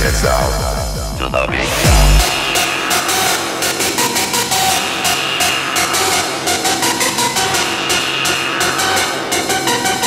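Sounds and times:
repeated synth riff: 0.1s - 9.0s.

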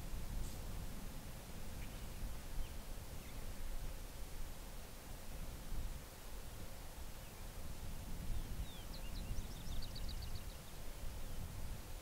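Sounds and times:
small bird singing: 8.3s - 11.5s.

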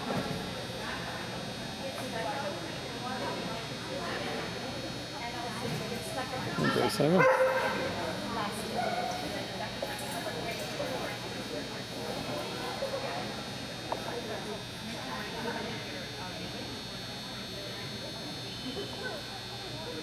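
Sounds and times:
faint indistinct talking: 0.0s - 20.0s
high hum from hall: 0.0s - 20.0s.

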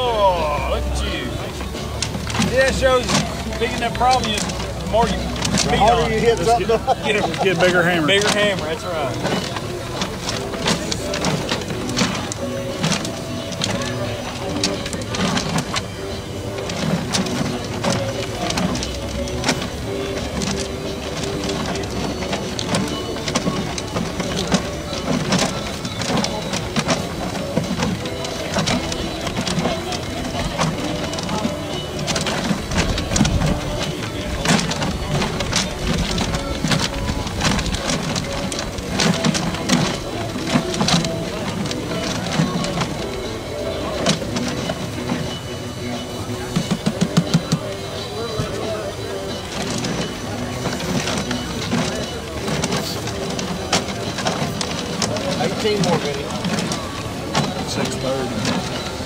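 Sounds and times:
paper tickets tumbling and rustling: 0.0s - 59.0s
raffle drum turning: 0.0s - 59.0s.

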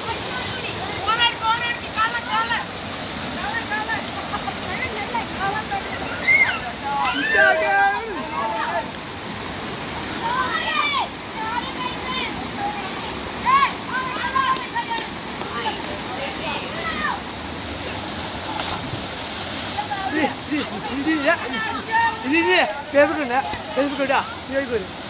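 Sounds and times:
river water rushing over rocks: 0.0s - 25.0s
people calling out: 6.1s - 8.9s.

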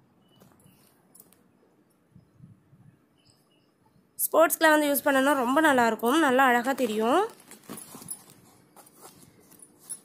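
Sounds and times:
crumpled paper rustling: 6.1s - 10.0s.

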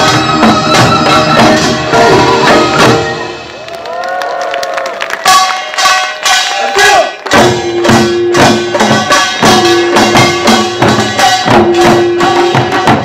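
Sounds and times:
drums and gongs: 0.0s - 4.1s, 5.1s - 13.0s.

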